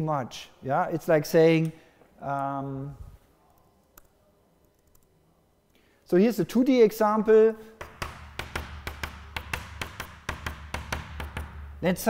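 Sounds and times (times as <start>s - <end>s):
chalk tapping on blackboard: 7.8s - 11.8s.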